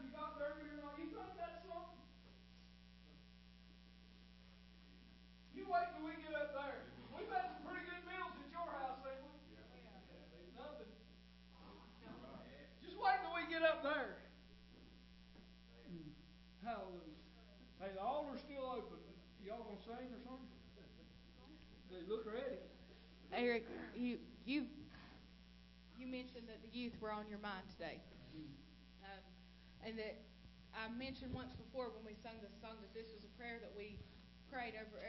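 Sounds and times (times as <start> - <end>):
electrical mains hum: 0.0 - 35.0.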